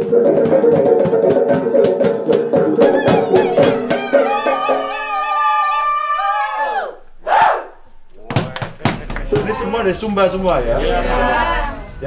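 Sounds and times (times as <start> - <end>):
voices singing a long note: 2.8 - 7.8, 9.3 - 12.0.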